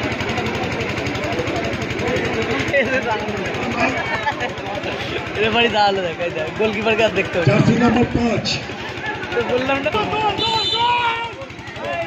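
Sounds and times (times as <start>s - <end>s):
crowd chatter: 0.0s - 12.0s
engine throbbing: 0.0s - 12.0s.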